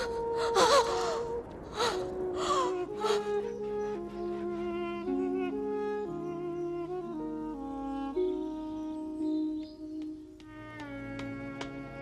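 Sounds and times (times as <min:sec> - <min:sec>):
woman gasping and moaning in pain: 0:00.0 - 0:03.5.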